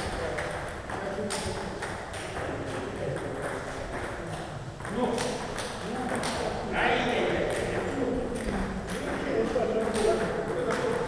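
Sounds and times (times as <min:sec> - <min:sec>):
table tennis ball clicking: 0:07.4 - 0:11.0.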